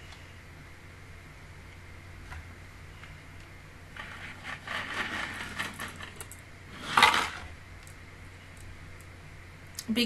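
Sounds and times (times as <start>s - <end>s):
rustling and scraping: 3.9s - 7.6s.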